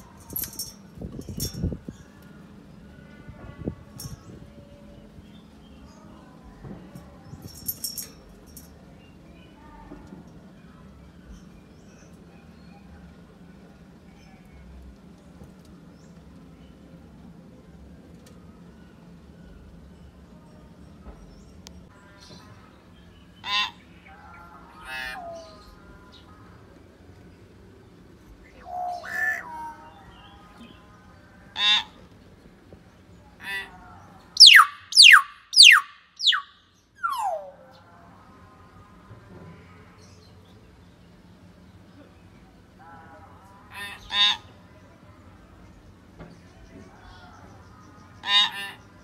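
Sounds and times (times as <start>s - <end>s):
hill myna whistling calls: 34.4s - 37.7s.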